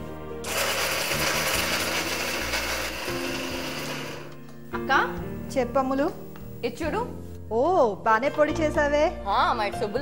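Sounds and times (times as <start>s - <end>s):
mixer grinder running: 0.4s - 4.4s.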